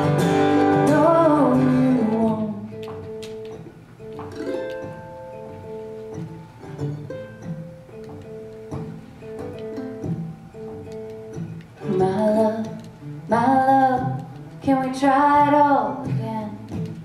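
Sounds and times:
mandolin plucking notes: 0.0 - 14.1.

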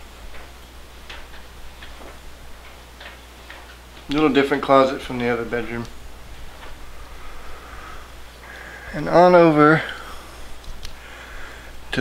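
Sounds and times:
steady low hum: 0.0 - 12.0
faint light clicks: 10.6 - 11.0.

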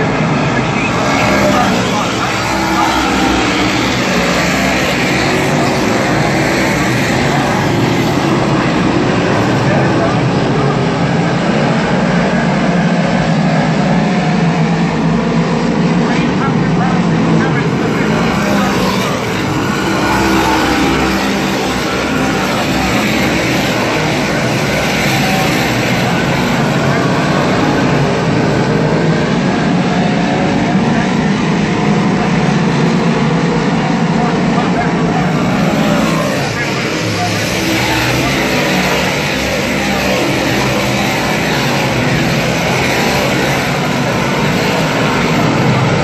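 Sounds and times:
race car engines droning: 0.0 - 46.0.

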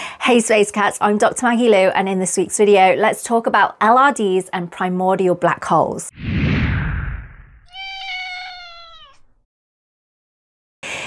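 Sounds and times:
whoosh: 6.1 - 7.7
cat meowing: 7.7 - 9.4.

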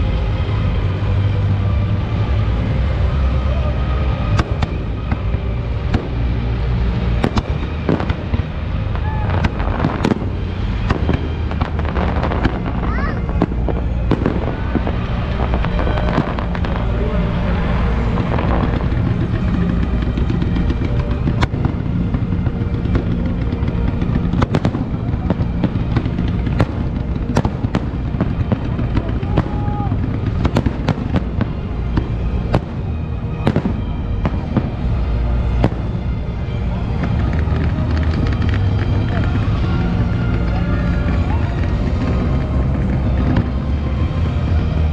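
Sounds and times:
crowd voices: 0.0 - 44.9
dense low rumble: 0.0 - 44.9
fireworks bangs and crackles: 0.0 - 44.9.

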